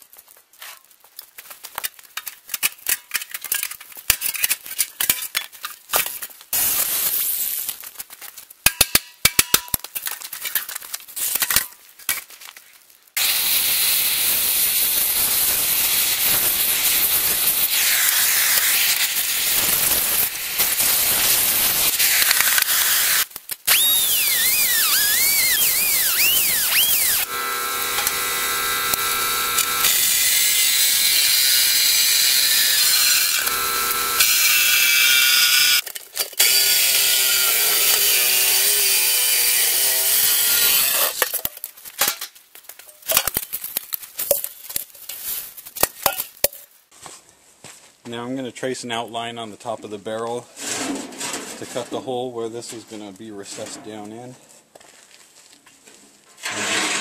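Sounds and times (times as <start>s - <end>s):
reciprocating saw cutting steel: 13.2s - 35.8s, 36.4s - 41.2s
steady ringing tone: 27.1s - 29.9s.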